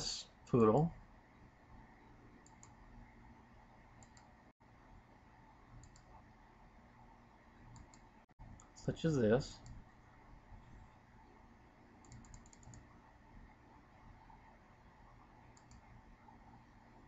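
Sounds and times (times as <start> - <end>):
low steady background hum: 0.0 - 17.0
computer mouse clicks: 2.4 - 2.8, 4.0 - 4.4, 5.8 - 6.2, 7.7 - 8.7, 9.6 - 9.8, 12.0 - 12.9, 15.5 - 15.9.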